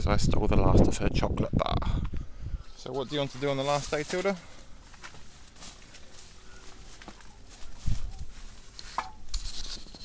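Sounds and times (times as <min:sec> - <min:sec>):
fabric rustling: 0:03.1 - 0:09.3.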